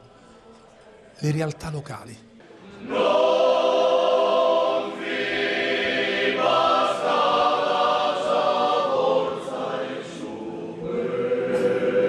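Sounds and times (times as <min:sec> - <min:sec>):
male choir singing unaccompanied: 0:02.6 - 0:12.0.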